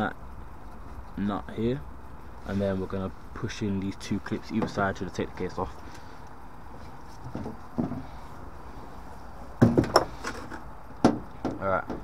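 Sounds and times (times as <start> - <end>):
faint knocks: 7.2 - 8.2.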